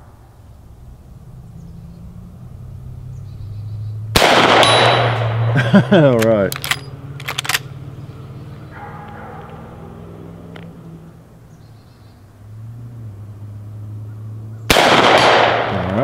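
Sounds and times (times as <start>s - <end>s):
low outdoor background: 0.0s - 16.0s
rifle shot with echo: 4.2s - 5.6s, 14.7s - 16.0s.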